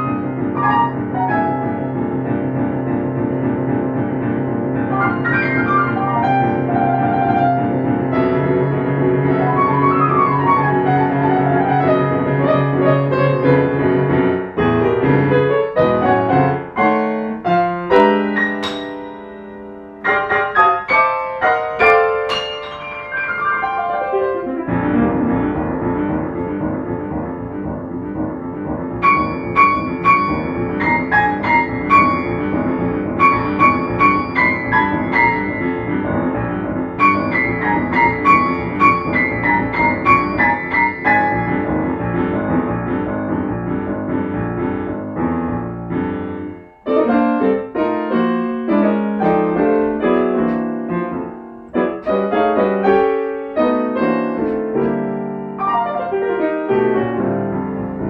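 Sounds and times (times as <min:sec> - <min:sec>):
solo grand piano: 0:00.0 - 0:58.0.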